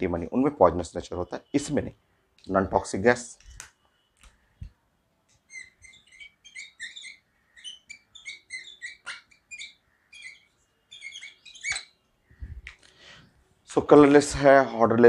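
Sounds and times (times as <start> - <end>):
marker squeaking on whiteboard: 3.3 - 12.8.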